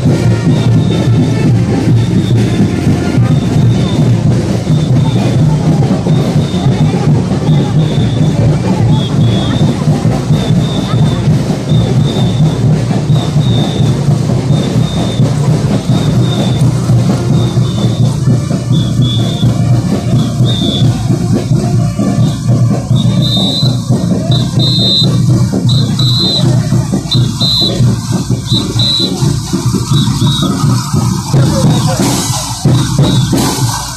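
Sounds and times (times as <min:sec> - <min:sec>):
band music with steady beat: 0:00.0 - 0:33.9
short high notes: 0:00.0 - 0:33.9.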